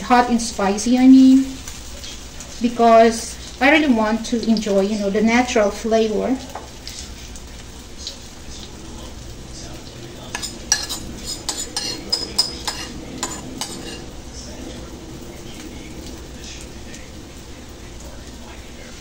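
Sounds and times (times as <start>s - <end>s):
batter sizzling in hot oil: 0.0s - 19.0s
metal spoon clinking and scraping: 10.3s - 14.1s.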